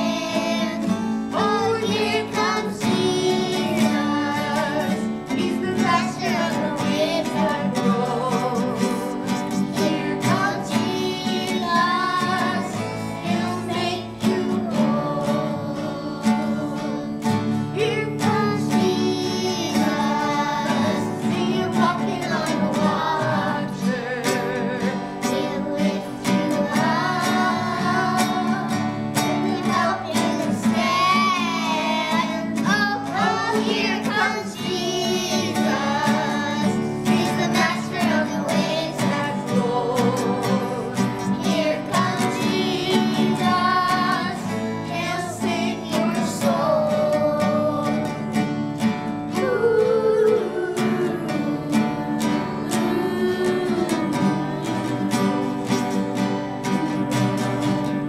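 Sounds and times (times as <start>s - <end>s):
children singing: 0.0s - 58.0s
strummed acoustic guitars: 0.0s - 58.0s.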